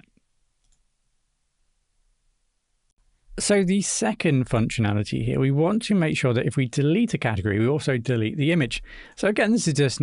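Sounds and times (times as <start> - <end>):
faint mouse clicks: 0.0 - 0.9.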